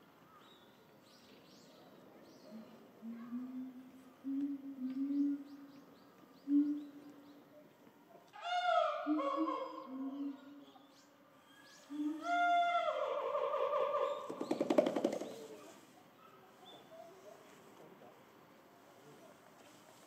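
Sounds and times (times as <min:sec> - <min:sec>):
gorilla beating its chest: 0:14.4 - 0:15.4.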